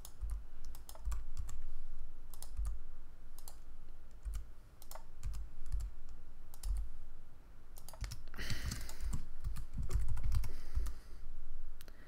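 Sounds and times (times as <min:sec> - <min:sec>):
keyboard keys clicking: 0:00.0 - 0:01.6, 0:02.3 - 0:02.8, 0:04.2 - 0:05.9, 0:06.5 - 0:06.9, 0:07.8 - 0:11.0.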